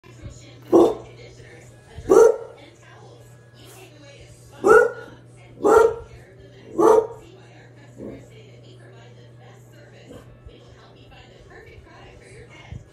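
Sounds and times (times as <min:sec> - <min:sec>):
television sound: 0:00.0 - 0:12.9
dog barking: 0:00.7 - 0:01.1, 0:02.1 - 0:02.6, 0:04.6 - 0:07.3.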